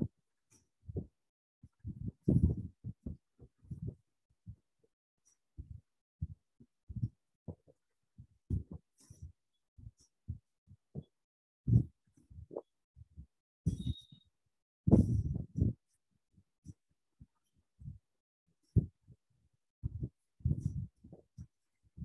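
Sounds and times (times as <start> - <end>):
muffled low thumps: 1.8 - 4.0, 14.9 - 15.7.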